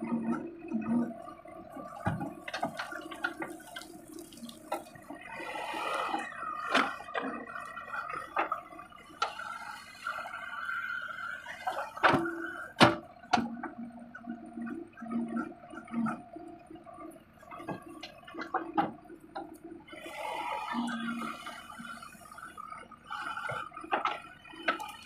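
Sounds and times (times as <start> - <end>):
diesel engine and hydraulics whine: 0.0 - 25.0.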